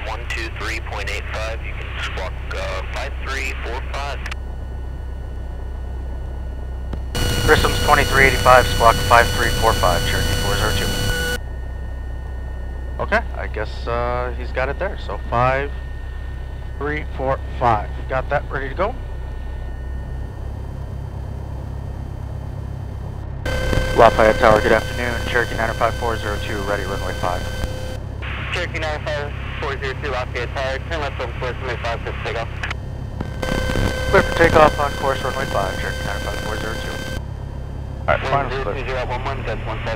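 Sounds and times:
radio voice: 0.0 - 4.4, 7.2 - 11.4, 13.0 - 15.8, 16.8 - 19.0, 23.5 - 32.7, 33.5 - 37.2, 38.1 - 39.9
aircraft engine droning: 0.0 - 39.9
faint steady whine: 0.0 - 39.9
thin steady tone: 7.2 - 20.9, 23.5 - 28.0, 33.4 - 37.2.

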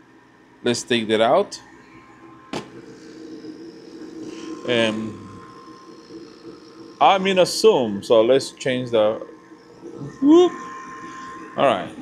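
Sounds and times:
filter box and fans humming: 0.0 - 12.0.

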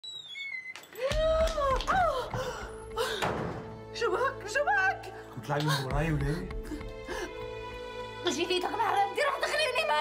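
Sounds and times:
dramatic music: 2.0 - 10.0.

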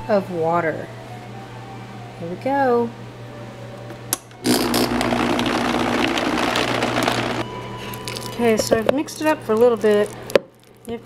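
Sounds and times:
blender motor running: 4.4 - 7.4.

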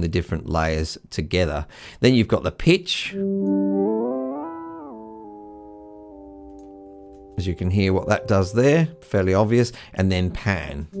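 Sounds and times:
piano note with pitch bending: 3.2 - 9.8.

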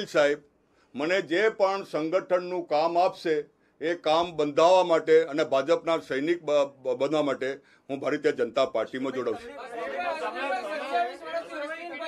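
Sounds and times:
man speaking: 0.0 - 0.4, 1.0 - 12.0.

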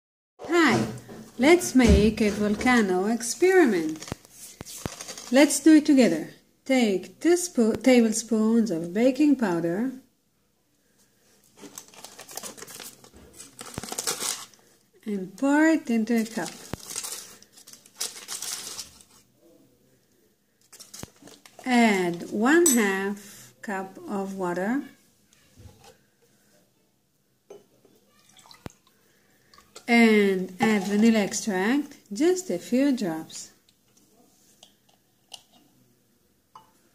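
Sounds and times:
plastic packet crinkling: 3.8 - 5.4, 11.5 - 14.7, 16.2 - 19.2, 20.6 - 21.7.

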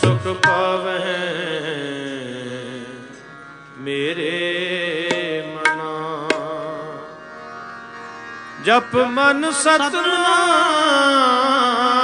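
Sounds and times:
man singing: 0.0 - 3.2, 3.8 - 7.2, 8.6 - 12.0
harmonium: 0.0 - 12.0.

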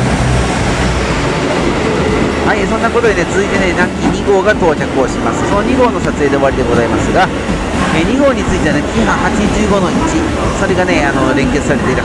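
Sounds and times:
diesel train passing: 0.0 - 12.0
low engine hum: 0.0 - 12.0.

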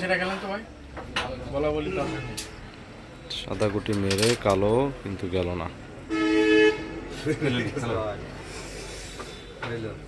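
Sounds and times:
vehicle horn beep: 1.8 - 2.6, 6.1 - 7.2.

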